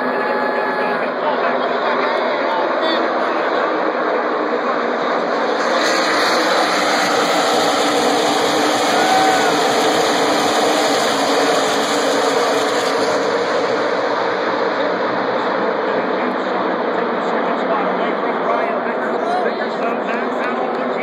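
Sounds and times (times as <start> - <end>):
race cars speeding past: 0.0 - 21.0.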